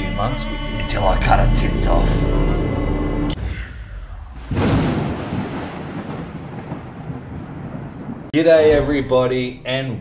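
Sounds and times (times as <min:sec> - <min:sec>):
rolling thunder rumble: 0:03.3 - 0:09.1.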